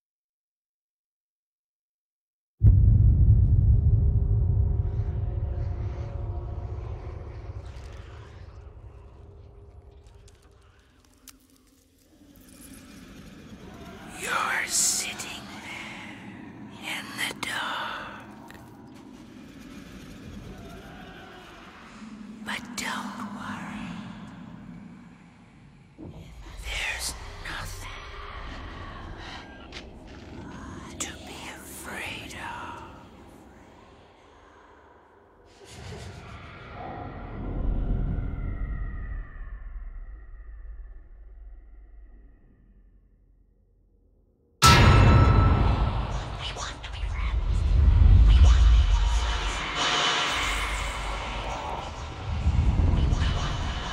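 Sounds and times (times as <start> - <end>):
low noisy rumble: 2.6 - 10.4
low rumble: 2.6 - 53.9
whispering voices: 13.5 - 18.8, 20.5 - 35.0, 46.1 - 53.9.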